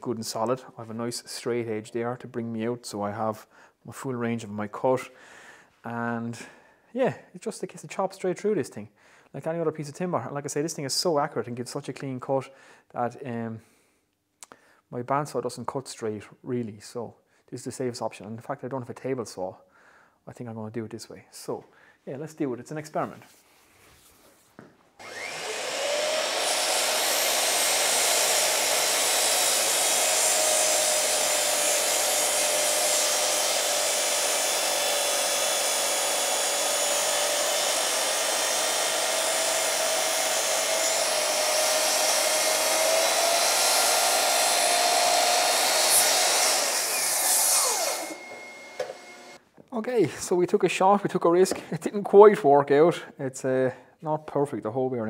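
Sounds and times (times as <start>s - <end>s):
mitre saw motor whine: 25.0s - 49.4s
saw blade cutting wood: 25.0s - 49.4s.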